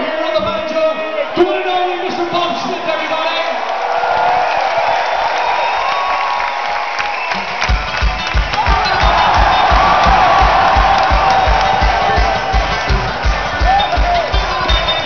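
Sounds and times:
crowd cheering: 0.0 - 15.0
fast kick drum beat: 7.5 - 15.0
punk band playing live: 7.6 - 15.0.

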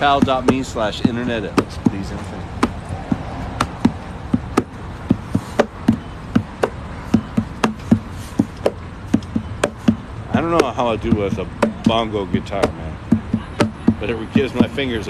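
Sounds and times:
hand drumming on guitar body: 0.1 - 2.0, 2.6 - 14.8.

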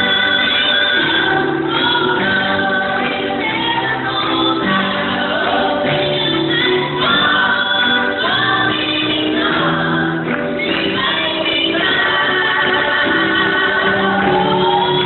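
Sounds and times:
women singing gospel over loudspeakers: 0.0 - 15.0.

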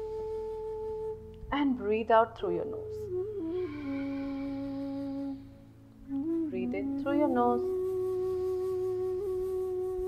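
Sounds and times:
soft wind-like melody: 0.0 - 10.0.

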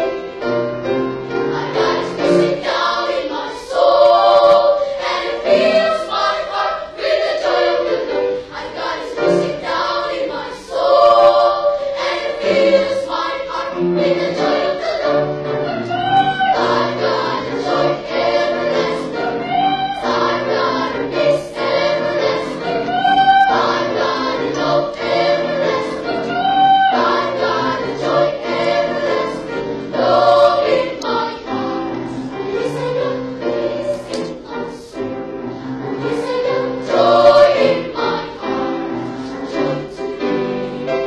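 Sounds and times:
children's choir singing: 0.0 - 41.0.

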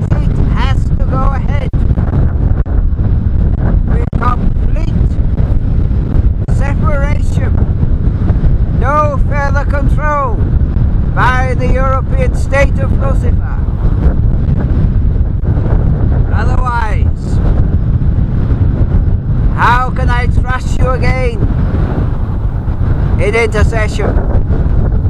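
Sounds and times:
strong wind buffeting microphone: 0.0 - 25.0.

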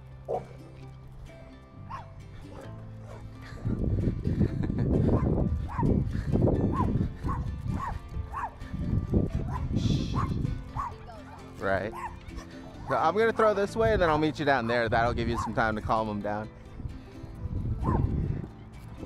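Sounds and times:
dog barking: 0.3 - 0.5, 1.9 - 3.2, 5.7 - 5.9, 6.7 - 8.6, 9.5 - 12.4, 15.4 - 15.6, 17.8 - 18.1.

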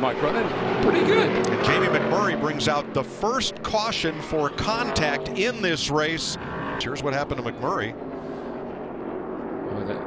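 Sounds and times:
race car engines at full throttle: 0.0 - 10.0.

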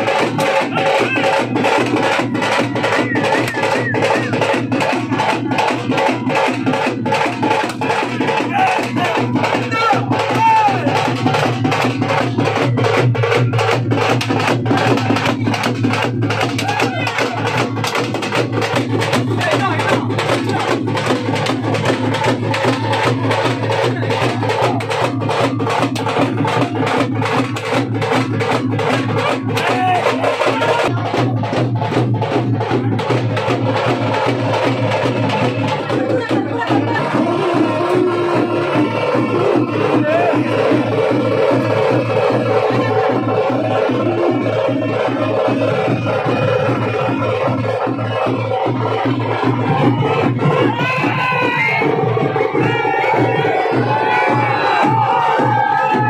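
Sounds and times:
fast stick drumming on drums: 0.0 - 56.0.

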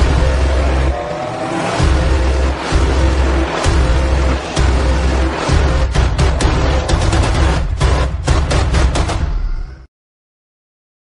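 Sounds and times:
rising tone: 0.0 - 7.1
deep bass hit: 1.8 - 9.7.

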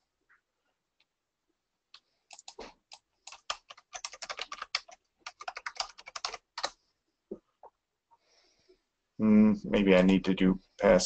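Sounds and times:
typing on computer keyboard: 2.3 - 6.8.

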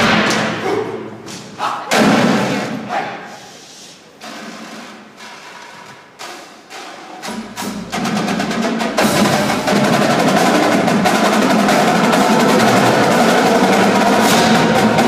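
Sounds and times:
percussion ensemble playing: 4.2 - 15.0.

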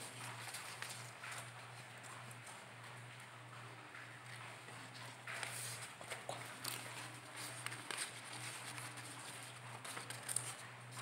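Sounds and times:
paper rustling: 0.0 - 2.2, 4.7 - 11.0.

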